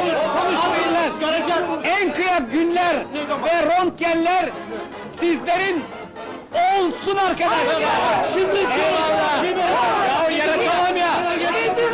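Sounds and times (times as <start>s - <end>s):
crowd of men shouting: 0.0s - 2.6s, 6.5s - 11.9s.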